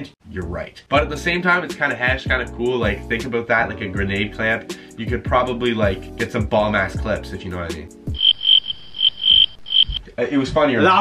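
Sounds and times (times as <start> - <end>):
high electronic beeps: 8.2 - 10.0.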